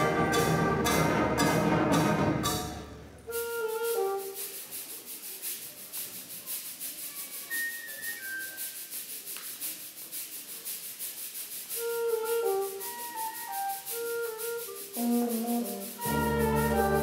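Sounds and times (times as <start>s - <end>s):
sparse woodwind notes: 0.0s - 2.2s, 3.2s - 4.8s, 11.7s - 17.0s
concert band playing: 0.0s - 3.1s, 16.0s - 17.0s
shaker percussion strokes: 0.0s - 17.0s.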